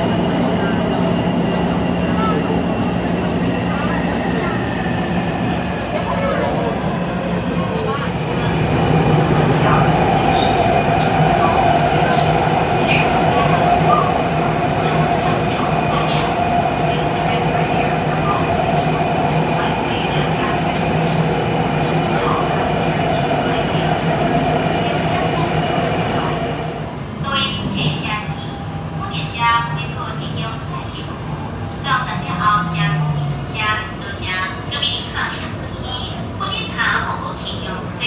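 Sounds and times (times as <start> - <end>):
train rumble with whine: 0.0 - 38.0.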